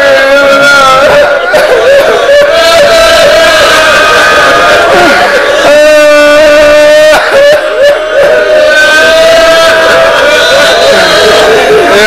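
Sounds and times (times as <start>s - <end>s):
crowd voices: 0.0s - 12.0s
man chanting a lament: 0.0s - 12.0s.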